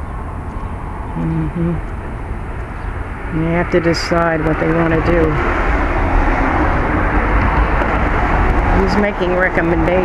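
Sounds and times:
car passing close by: 3.0 - 10.0.

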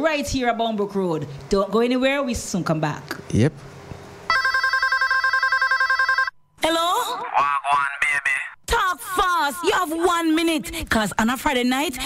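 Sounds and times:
electronic telephone ringing: 4.3 - 6.4.

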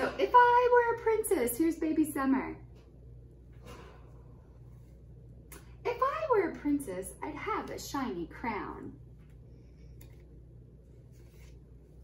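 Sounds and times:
woman speaking: 0.0 - 2.7, 5.8 - 9.0
low steady hum: 0.0 - 12.0.

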